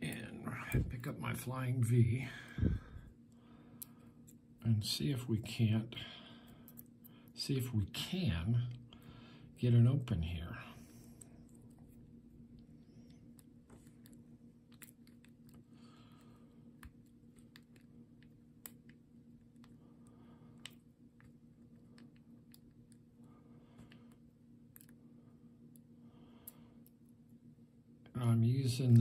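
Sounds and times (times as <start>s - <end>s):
low background hum: 0.0s - 29.0s.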